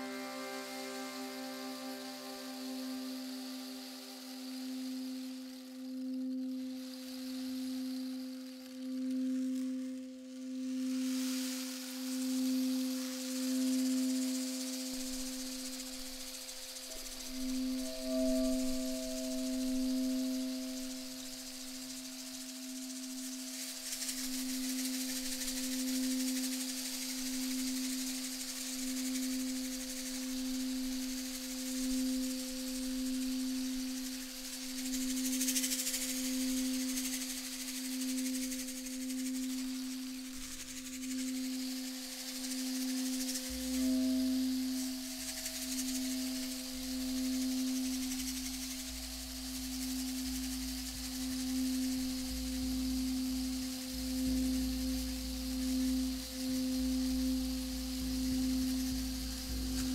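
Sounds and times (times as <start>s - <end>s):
crystal singing bowl ringing: 0.0s - 5.3s, 16.7s - 23.1s, 37.6s - 59.9s.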